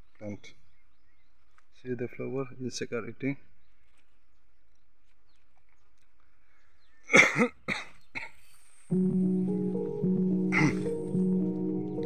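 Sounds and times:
person coughing: 7.1 - 8.4, 10.5 - 11.0
music: 8.9 - 12.0.

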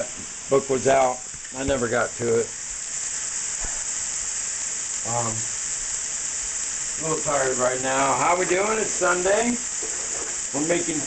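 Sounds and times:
food sizzling in a frying pan: 0.0 - 11.0.

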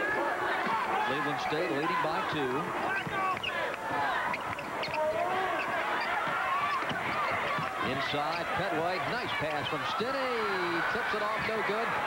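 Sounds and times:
shoes squeaking on hardwood: 4.3 - 7.8.

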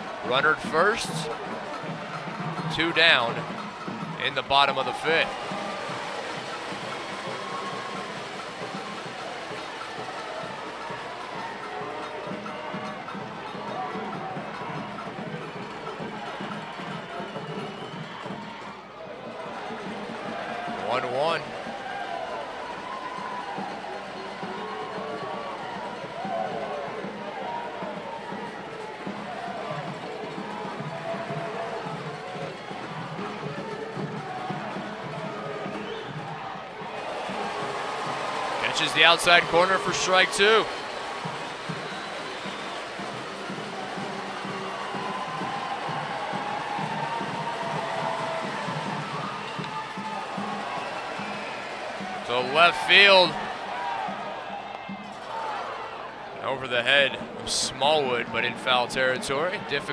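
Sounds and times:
crowd chatter: 0.0 - 17.8, 23.9 - 59.9
music playing: 0.0 - 59.9.

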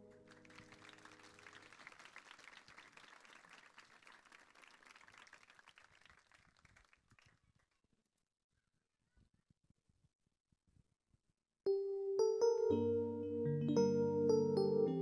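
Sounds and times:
faint audience applause: 0.0 - 7.8.

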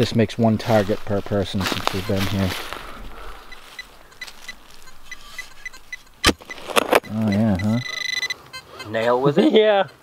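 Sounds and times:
metal detector beeps: 1.9 - 2.5, 3.2 - 9.2
metal detector steady tone: 3.2 - 9.2
digging clicks in soil: 3.5 - 7.4.

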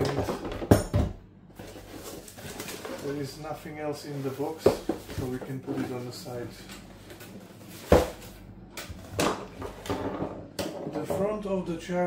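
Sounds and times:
cardboard box rustling and scraping: 1.6 - 3.3.

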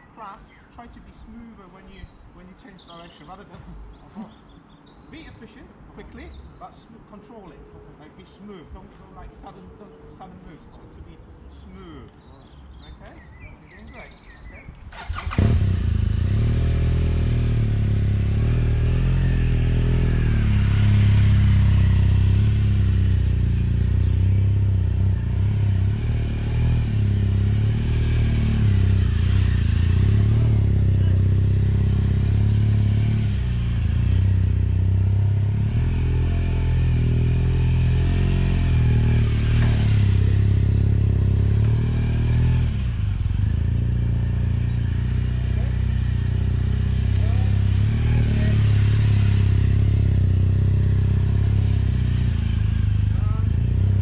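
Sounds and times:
motorcycle engine running: 15.0 - 54.0.

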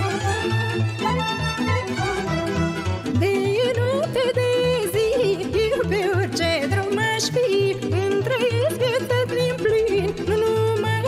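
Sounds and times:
band accompaniment: 0.0 - 3.4
steady bass line: 0.0 - 5.8
folk song with ornamented vocals: 0.0 - 11.0.

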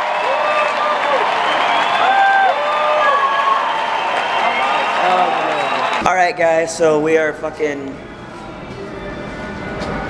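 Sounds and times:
crowd shouting: 0.0 - 6.0
crowd clapping: 0.0 - 6.3.

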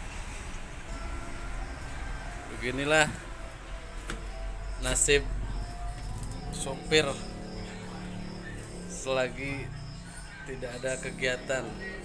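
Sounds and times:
low steady hum: 0.0 - 12.0
crickets chirping: 0.8 - 12.0.

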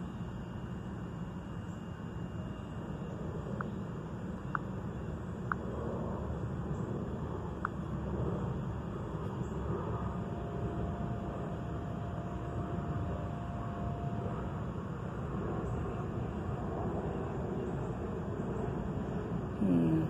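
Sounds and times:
faint steady tone: 0.0 - 20.0
low background rumble: 1.7 - 20.0.

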